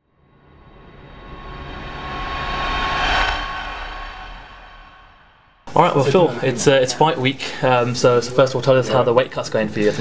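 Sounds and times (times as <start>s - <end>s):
low rumble: 0.4s - 5.7s
whoosh rush of noise: 0.4s - 5.7s.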